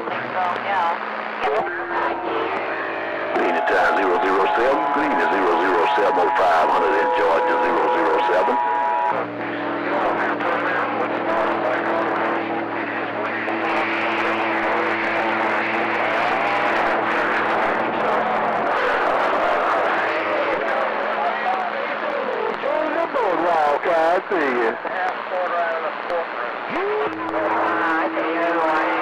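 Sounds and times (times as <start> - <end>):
garbled distant voices: 0.0 - 15.4
low steady beating tones: 0.0 - 18.6
radio static and hiss: 0.0 - 29.0.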